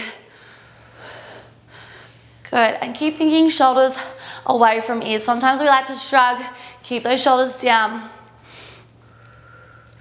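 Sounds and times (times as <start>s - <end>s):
woman breathing from exertion: 0.2s - 2.4s, 8.3s - 10.0s.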